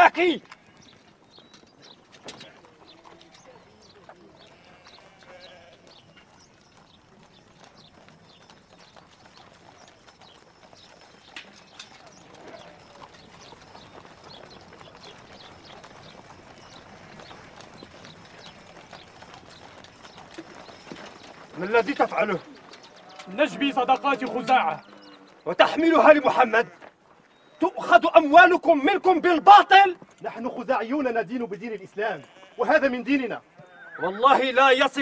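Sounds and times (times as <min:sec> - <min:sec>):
hooves clopping: 0:00.0 - 0:35.0
faint voices: 0:02.0 - 0:06.4, 0:11.5 - 0:14.1.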